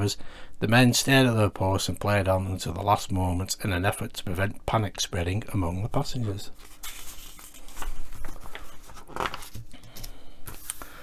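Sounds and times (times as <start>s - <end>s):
magazine pages rustling: 6.0s - 11.0s.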